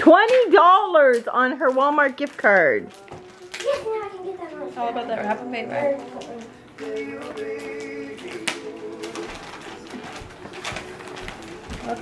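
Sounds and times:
wrapping paper crinkling: 0.0s - 12.0s.

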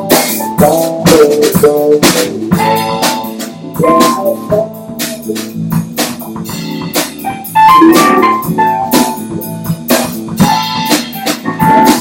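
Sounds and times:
bass guitar: 0.0s - 12.0s
drum kit: 0.0s - 12.0s
electric guitar: 0.0s - 12.0s
sustained keyboard chords: 0.0s - 12.0s.

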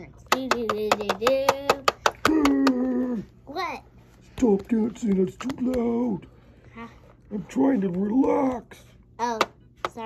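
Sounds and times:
plastic toy tapping on plastic base: 0.2s - 2.8s, 9.3s - 10.0s.

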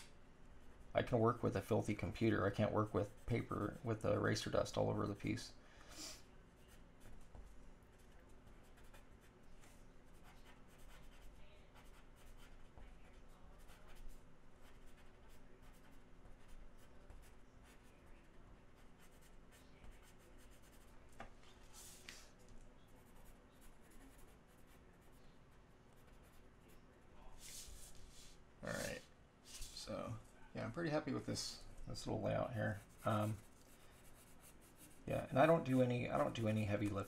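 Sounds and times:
pencil scratching on board: 6.6s - 17.9s, 18.8s - 20.9s, 22.9s - 25.2s, 32.7s - 37.0s.

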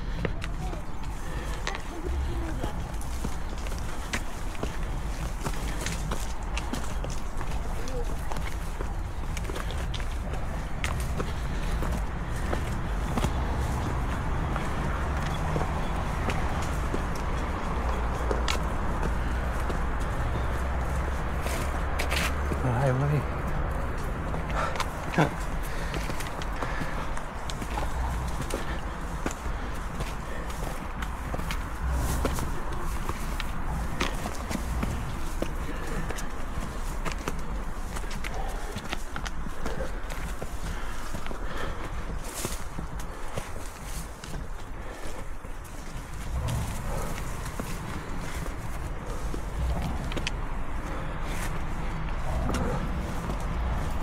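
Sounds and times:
footsteps on muddy path: 0.0s - 54.0s
steady low rumble: 22.6s - 54.0s.

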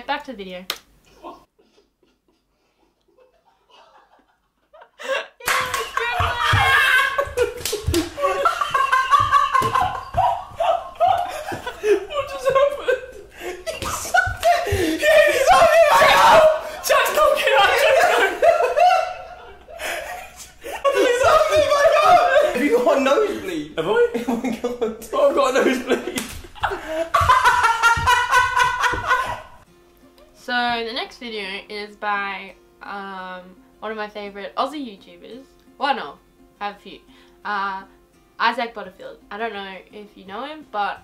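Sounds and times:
young men laughing and shouting: 1.1s - 29.6s
sharp slaps: 5.4s - 8.2s, 26.1s - 26.6s
voices talking and chuckling: 5.8s - 15.7s.

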